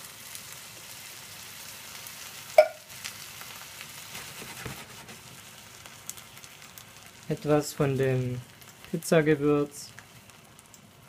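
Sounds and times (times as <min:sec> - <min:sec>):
food sizzling in a frying pan: 0:00.0 - 0:11.0.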